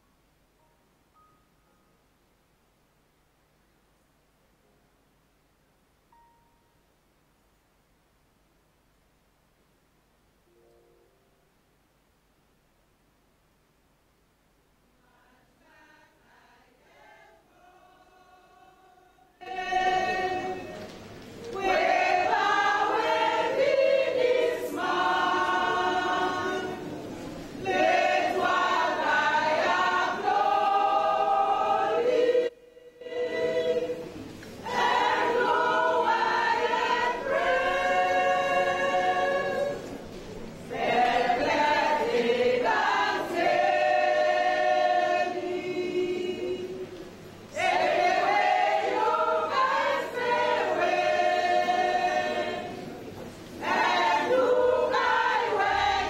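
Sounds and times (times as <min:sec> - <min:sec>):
women's choir singing: 0:15.0 - 0:56.0.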